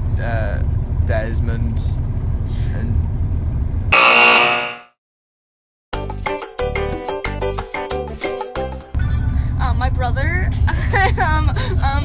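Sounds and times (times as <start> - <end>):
game show fail buzzer: 4.0 - 5.0
bus rumbling: 9.3 - 12.0.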